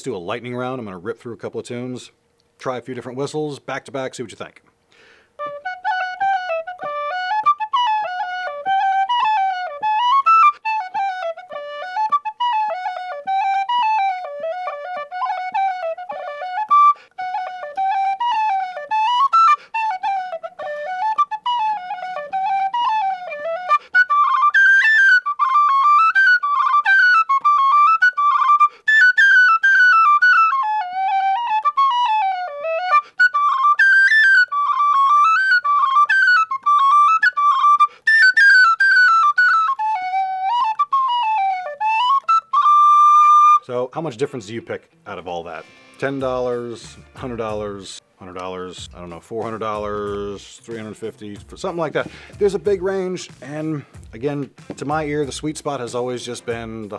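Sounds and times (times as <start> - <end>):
tin whistle playing fast tune: 5.4 - 43.7.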